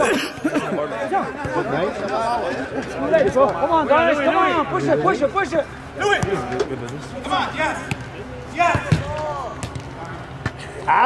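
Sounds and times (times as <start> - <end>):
soccer ball kicked: 7.8 - 10.6.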